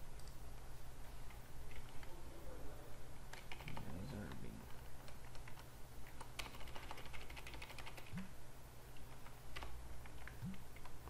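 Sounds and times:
computer keyboard clicking: 3.3s - 8.2s, 9.1s - 11.0s.

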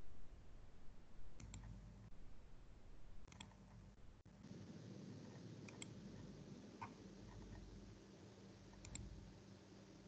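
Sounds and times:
faint low hum: 0.0s - 10.0s
computer mouse clicking: 1.4s - 1.8s, 3.3s - 3.8s, 5.2s - 7.7s, 8.7s - 9.2s.

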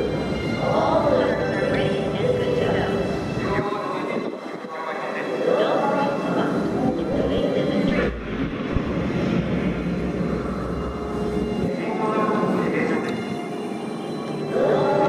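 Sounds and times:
voices: 0.0s - 9.0s, 11.6s - 13.6s, 14.3s - 15.0s
deep steady rumble: 6.6s - 12.8s.

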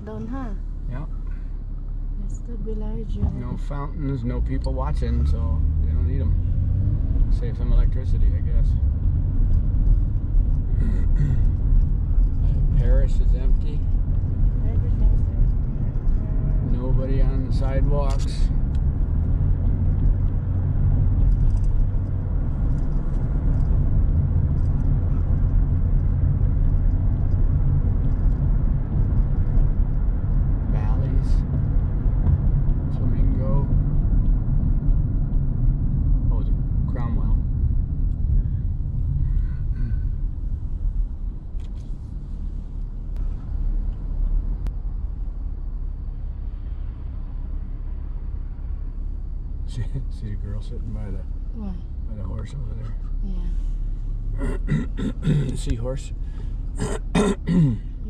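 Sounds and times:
car cabin road and engine rumble: 0.0s - 58.0s.

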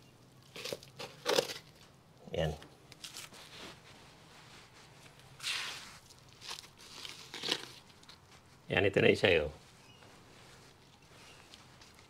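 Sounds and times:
potting mix scuffs and clicks: 0.3s - 12.0s.

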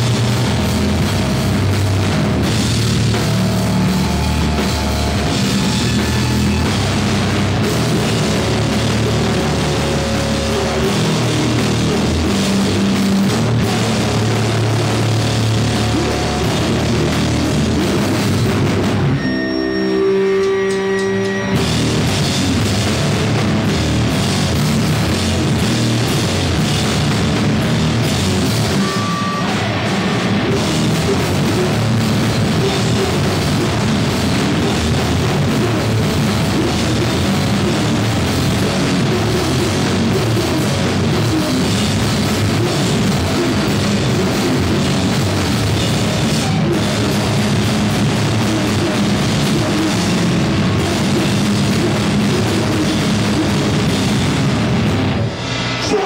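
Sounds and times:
drum kit: 0.0s - 56.0s
live rock band playing: 0.0s - 56.0s.

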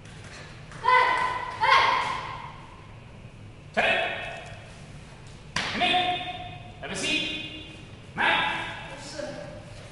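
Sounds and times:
child shouting sharply: 0.8s - 2.2s.

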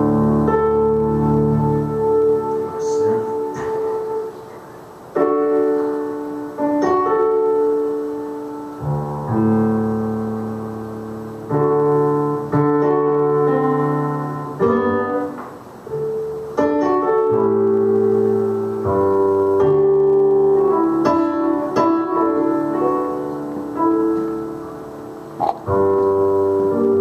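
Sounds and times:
piano chords: 0.0s - 27.0s.

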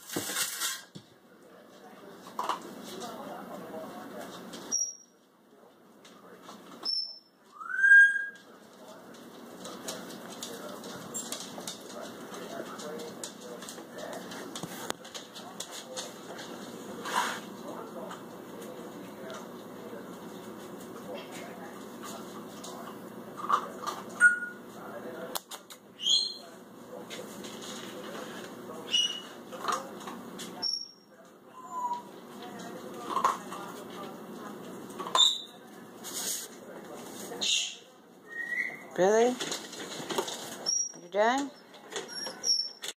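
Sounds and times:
rising whistle-like call: 7.5s - 8.4s.

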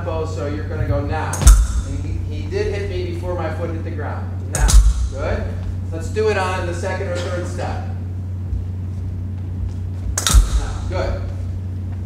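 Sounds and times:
steady low hum: 0.0s - 12.0s
footsteps on wooden floor: 5.0s - 6.0s, 8.2s - 12.0s.

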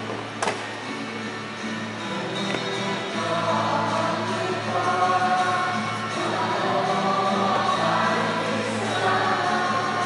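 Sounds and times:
church choir singing a hymn: 2.0s - 10.0s.

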